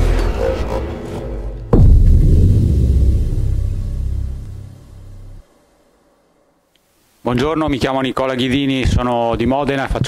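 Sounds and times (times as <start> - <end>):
deep cinematic rumble: 0.2 - 5.4.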